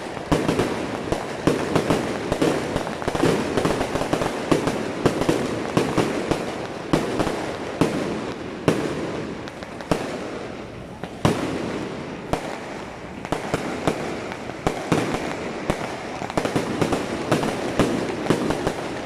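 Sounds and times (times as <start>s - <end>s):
firework bangs: 0.0s - 19.0s
hiss of burning and crackling: 0.0s - 19.0s.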